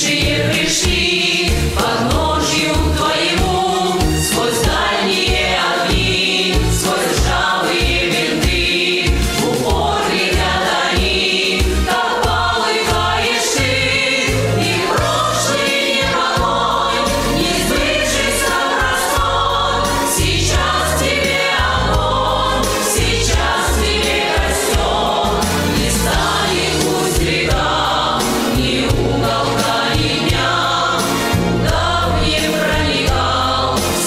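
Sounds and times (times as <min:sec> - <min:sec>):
women singing into microphones: 0:00.0 - 0:30.7
instrumental accompaniment: 0:00.0 - 0:34.0.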